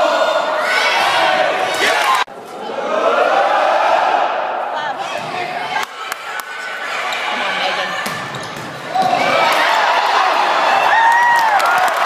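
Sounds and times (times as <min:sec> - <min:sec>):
crowd voices echoing: 0:00.0 - 0:11.3.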